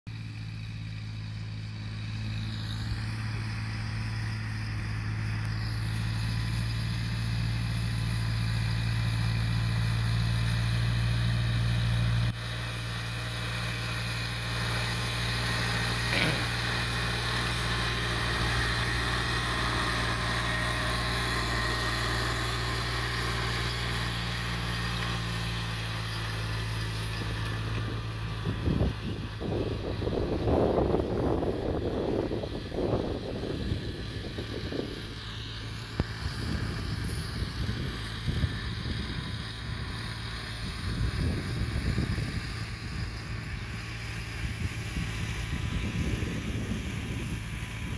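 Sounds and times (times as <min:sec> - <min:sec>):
tractor diesel engine droning: 0:00.1 - 0:47.9.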